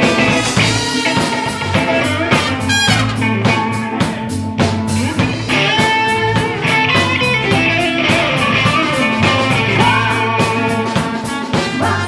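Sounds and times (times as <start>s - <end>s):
blues band playing: 0.0s - 12.0s
drums keeping steady beat: 0.0s - 12.0s
bright high note: 2.5s - 3.2s.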